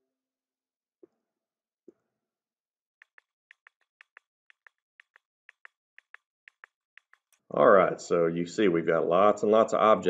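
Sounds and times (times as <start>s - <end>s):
computer mouse clicks: 3.0s - 7.4s.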